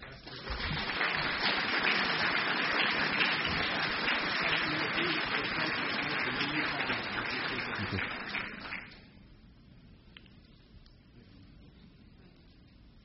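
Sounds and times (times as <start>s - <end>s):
audience applauding: 0.0s - 9.0s.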